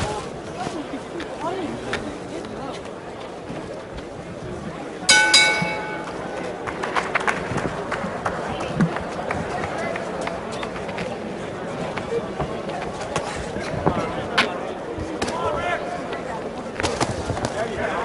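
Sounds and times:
arena crowd noise and voices: 0.0 - 18.0
boxing ring bell: 5.1 - 6.2.

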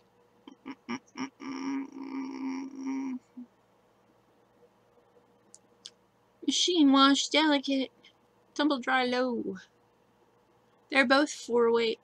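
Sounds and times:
person humming: 0.5 - 3.5
person making wordless sounds: 0.5 - 3.6.

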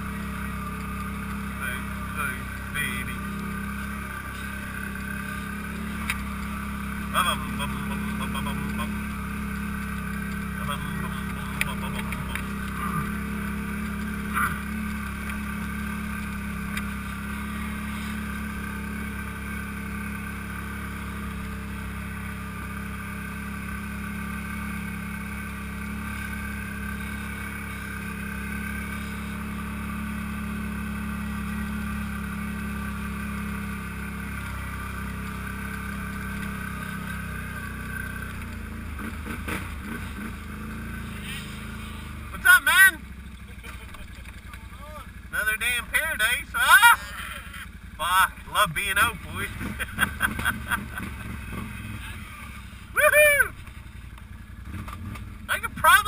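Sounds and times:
quad engine running: 0.0 - 56.0.

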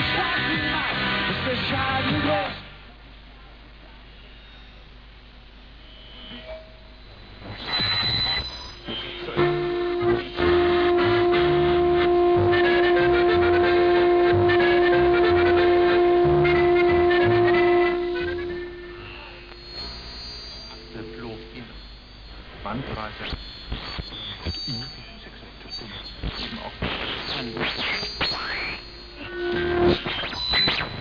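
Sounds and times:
radio music broadcast: 0.0 - 2.8, 5.8 - 31.0
long held note: 7.7 - 22.3, 28.5 - 30.0.

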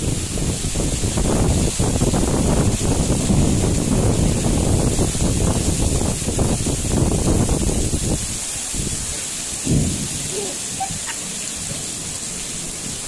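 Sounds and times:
heavy rain hissing: 0.0 - 13.0
wind buffeting microphone: 0.0 - 13.0.

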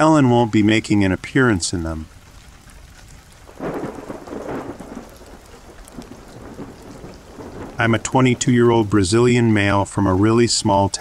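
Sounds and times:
steady rain: 0.0 - 11.0
thunder rolling: 3.1 - 10.4.

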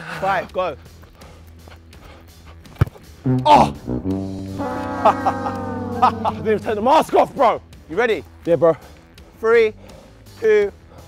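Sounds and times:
quiet background music: 3.3 - 8.7.

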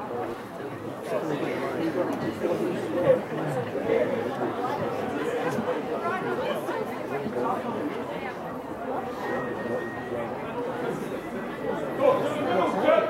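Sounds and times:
spectators chattering: 0.0 - 13.0.

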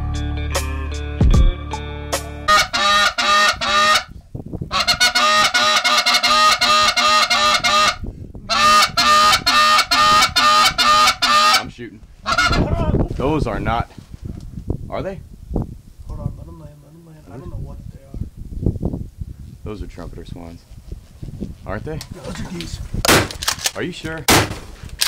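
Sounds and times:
background music: 0.0 - 3.9
geese honking: 2.5 - 4.1, 4.7 - 12.8.

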